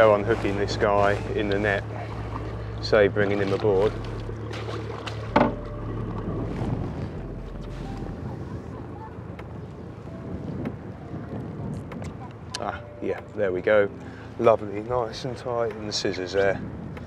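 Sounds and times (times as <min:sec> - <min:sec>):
wind on microphone: 0:00.0 - 0:14.4, 0:15.2 - 0:17.0
water moving around boat: 0:00.0 - 0:17.0.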